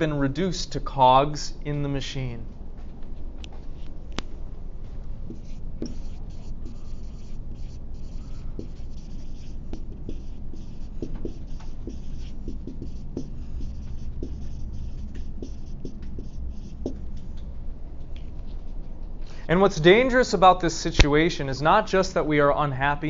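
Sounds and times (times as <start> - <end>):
low room hum: 0.0 - 23.0
pen writing strokes: 5.3 - 17.1.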